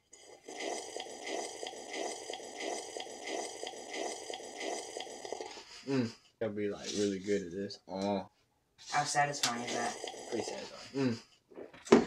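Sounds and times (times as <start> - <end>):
slurping and swallowing milk: 0.0 - 6.1, 9.5 - 11.2
person saying mmm: 5.9 - 6.2, 9.7 - 11.2.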